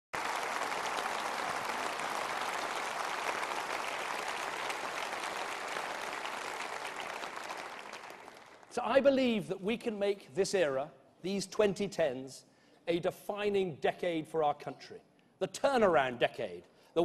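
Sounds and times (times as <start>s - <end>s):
audience applauding: 0.1s - 8.8s.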